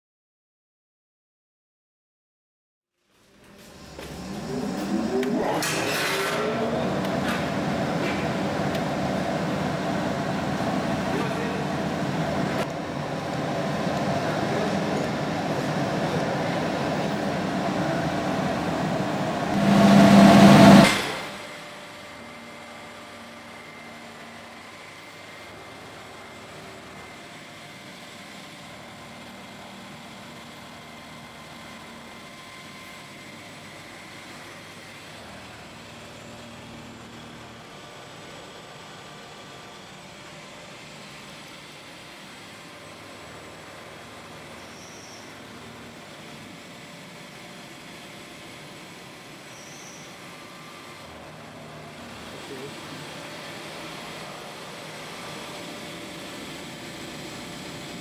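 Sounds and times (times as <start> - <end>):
machine hum with faint whine: 3.0 - 58.0
loud rush of machine noise: 3.3 - 58.0.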